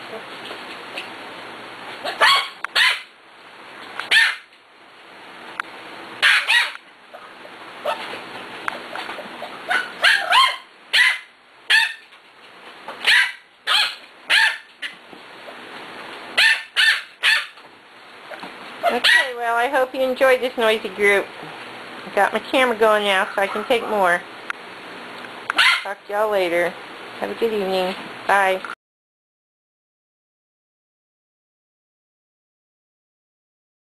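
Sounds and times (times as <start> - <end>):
puppies yapping: 2.0 - 3.2, 4.1 - 4.6, 6.2 - 12.2, 13.0 - 15.0, 16.4 - 17.6, 23.2 - 24.2, 25.5 - 25.9.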